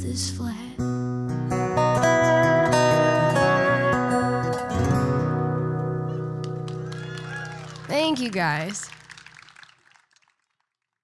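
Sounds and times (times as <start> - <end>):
small audience applause: 6.4 - 11.0.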